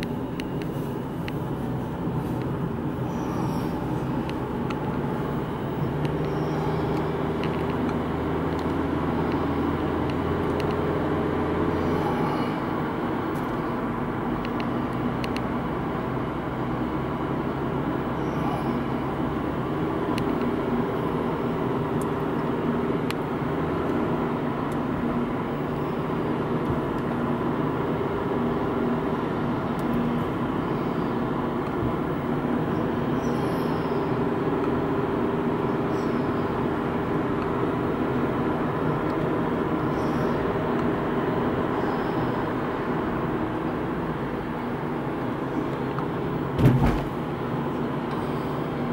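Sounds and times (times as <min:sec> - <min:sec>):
car engine drone: 0:00.0 - 0:48.9
tyre rumble on asphalt: 0:46.5 - 0:47.3.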